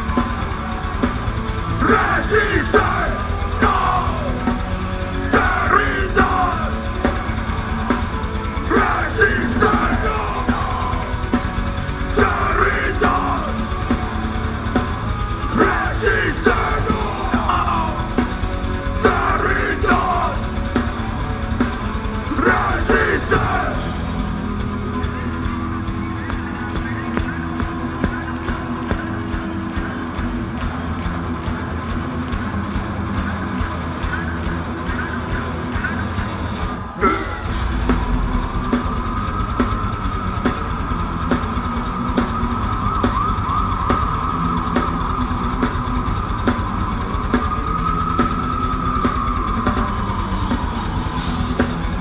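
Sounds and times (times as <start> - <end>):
distorted guitar: 0.0 - 52.0
fast drumming: 0.0 - 52.0
metal band playing live: 0.0 - 52.0.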